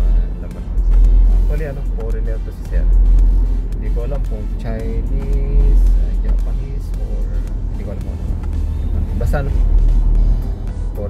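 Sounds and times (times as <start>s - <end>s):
background music with singing: 0.0s - 11.0s
car road and engine rumble: 0.0s - 11.0s.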